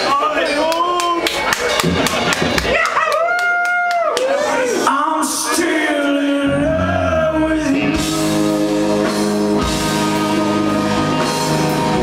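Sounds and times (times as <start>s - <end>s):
rock band playing ballad: 5.2s - 12.0s.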